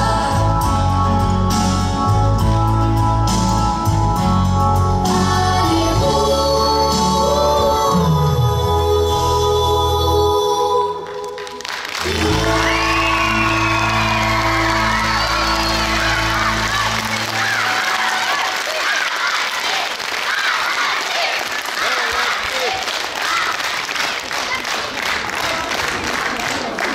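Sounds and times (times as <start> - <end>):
audience applauding: 11.0 - 26.9
voices calling out: 12.1 - 23.6.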